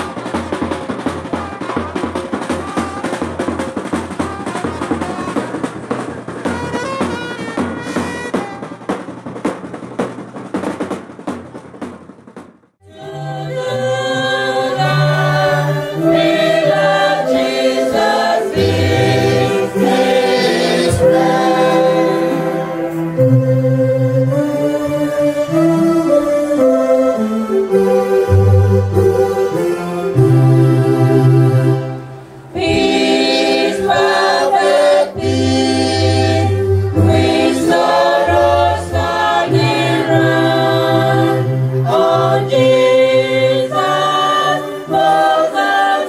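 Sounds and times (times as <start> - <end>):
drum band fast rhythm: 0.0 - 12.8
people singing: 12.8 - 23.2, 32.5 - 46.0
congregation singing slow hymn: 12.8 - 46.0.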